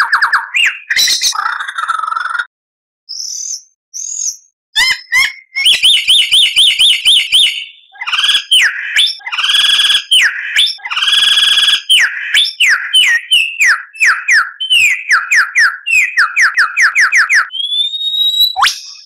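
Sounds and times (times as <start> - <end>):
songbird singing: 0.0 - 2.5, 3.1 - 19.0.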